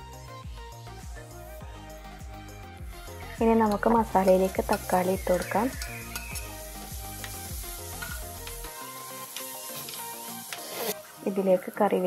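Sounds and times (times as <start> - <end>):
background music: 0.0 - 12.0
vegetables sizzling in oil: 3.3 - 12.0.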